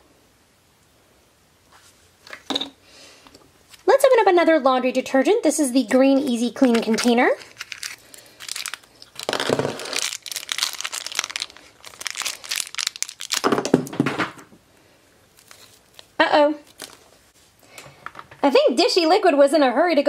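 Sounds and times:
foil bag crinkling and tearing: 6.3s - 13.8s, 15.3s - 17.1s.

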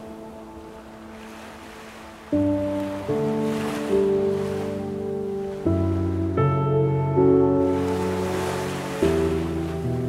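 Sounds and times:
ocean waves breaking: 0.0s - 10.0s
soft piano music: 0.0s - 10.0s.

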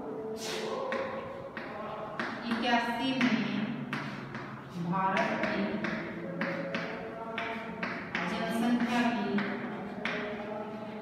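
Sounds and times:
chalk tapping and scraping on blackboard: 0.4s - 11.0s.

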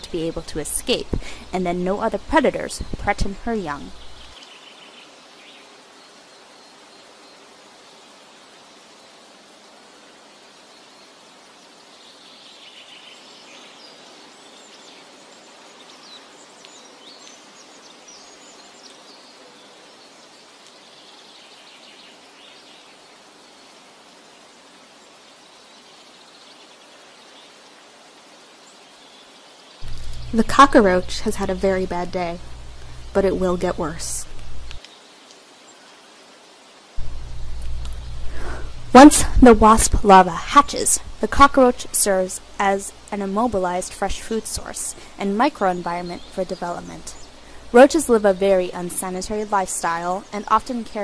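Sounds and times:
soft outdoor hiss: 0.0s - 51.0s.

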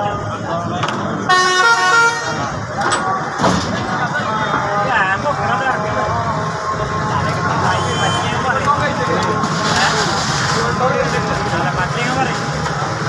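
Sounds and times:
crowd of men chattering: 0.0s - 13.0s
vehicle horn blaring: 1.3s - 2.6s, 7.6s - 8.5s.

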